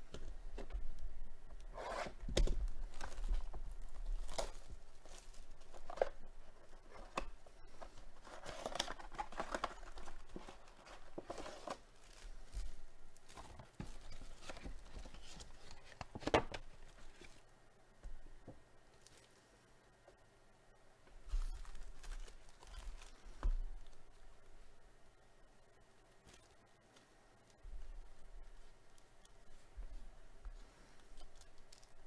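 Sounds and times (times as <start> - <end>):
plastic wrap tearing and crinkling: 1.8 - 17.4, 21.3 - 24.0
foil packs rustling: 1.8 - 17.5, 21.2 - 24.2
cardboard box opening: 6.8 - 12.2.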